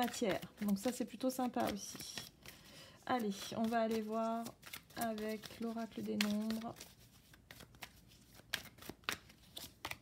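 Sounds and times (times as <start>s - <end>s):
cards being shuffled by hand: 0.0s - 10.0s.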